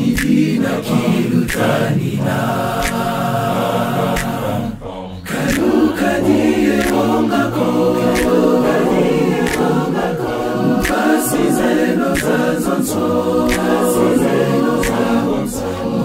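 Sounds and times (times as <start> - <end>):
male vocal group singing a cappella: 0.0 - 16.0.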